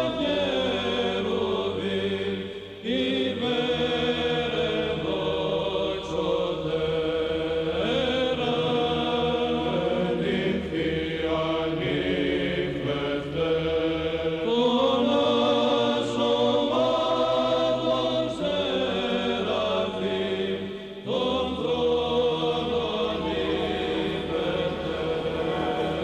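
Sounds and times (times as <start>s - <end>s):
choir chanting slow held notes: 0.0s - 26.0s.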